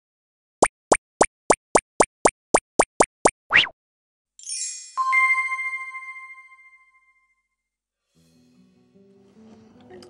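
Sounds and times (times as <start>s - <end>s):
cartoon plops: 0.6s - 3.8s
cartoon rising swoop: 3.5s - 3.8s.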